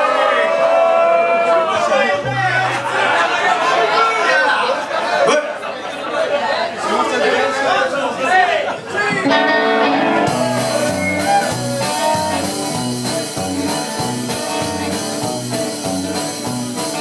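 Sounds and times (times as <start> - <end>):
bass guitar: 9.2 - 17.0
drums steady beat: 9.2 - 17.0
electric guitars: 9.2 - 17.0.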